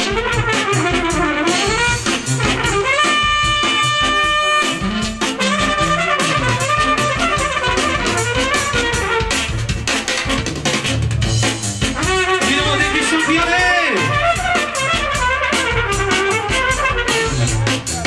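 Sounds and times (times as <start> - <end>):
steady drum beat: 0.0 - 18.0
trumpet melody: 0.0 - 18.0.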